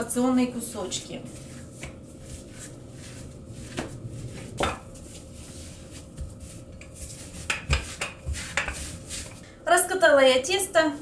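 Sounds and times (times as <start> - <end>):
rolling pin rubbing on dough: 0.8 - 9.4.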